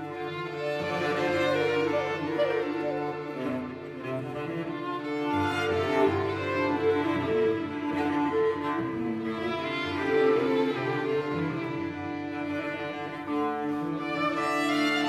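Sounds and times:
cello and violin chamber music: 0:00.0 - 0:15.0.

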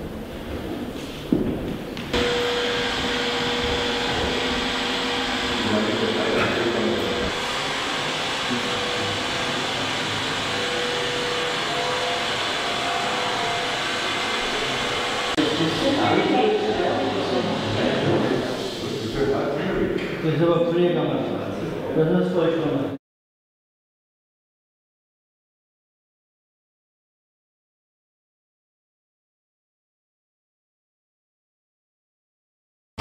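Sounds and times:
power tool cutting wood: 0:02.1 - 0:19.0.

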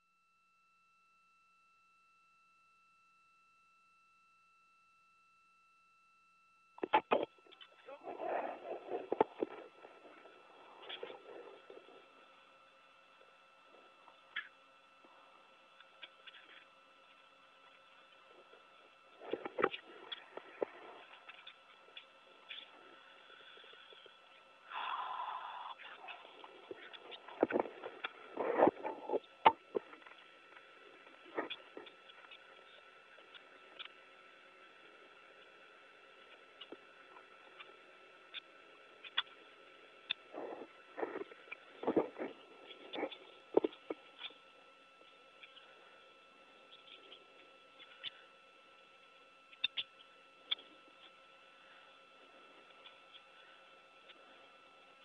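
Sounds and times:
equipment hum: 0:06.8 - 0:55.0.

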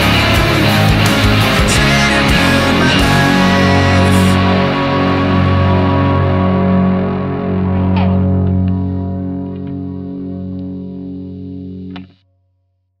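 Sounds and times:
distorted guitar chord ringing: 0:00.0 - 0:12.3
guitar pick click: 0:07.7 - 0:12.2.

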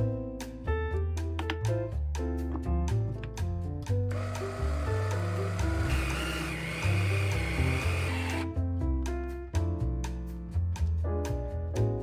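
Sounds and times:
background music: 0:00.0 - 0:12.0
food chopper motor: 0:04.1 - 0:08.4
high motor whine: 0:04.2 - 0:08.4.

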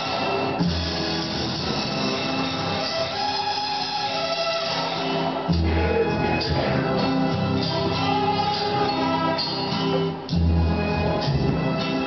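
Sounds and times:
guitar chords: 0:05.0 - 0:12.0.

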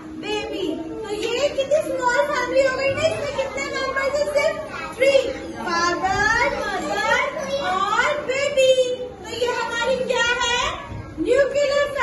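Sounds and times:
young children talking and calling: 0:00.0 - 0:12.0.

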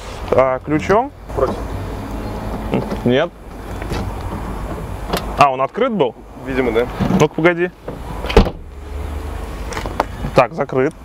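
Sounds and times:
car boot lid slamming: 0:07.9 - 0:08.7.

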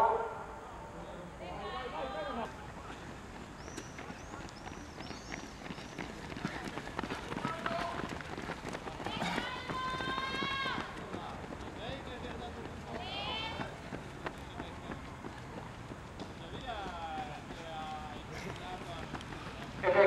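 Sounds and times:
runners' footsteps on track: 0:02.4 - 0:20.0.

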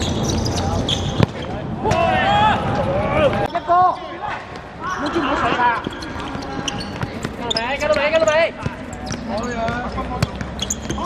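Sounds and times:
background noise: 0:00.0 - 0:11.0.

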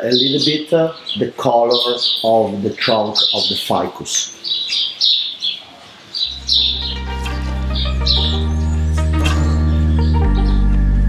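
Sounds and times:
birds chirping: 0:00.0 - 0:11.0
music with low sustained chords: 0:06.3 - 0:11.0.

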